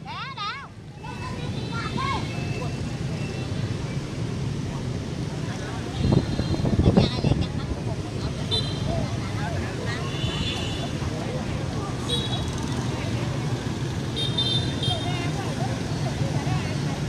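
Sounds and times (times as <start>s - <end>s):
people talking: 0.0s - 3.3s, 4.6s - 13.8s, 14.8s - 17.0s
street traffic rumble: 0.0s - 17.0s.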